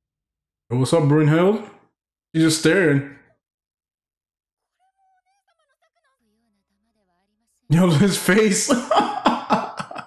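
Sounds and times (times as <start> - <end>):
man speaking: 0.7 - 3.3, 7.7 - 10.0.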